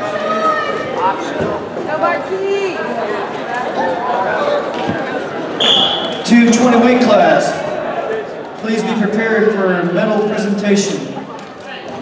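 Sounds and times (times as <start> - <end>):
referee's whistle blast: 5.6 - 6.2.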